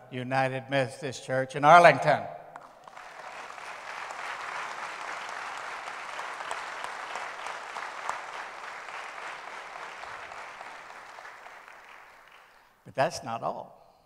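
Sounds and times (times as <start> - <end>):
crowd applauding: 2.6 - 12.8.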